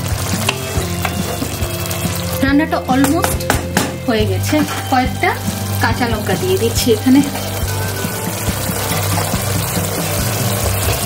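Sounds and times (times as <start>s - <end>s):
fish simmering in a pan: 0.0s - 2.6s, 4.9s - 11.0s
background music: 0.0s - 11.0s.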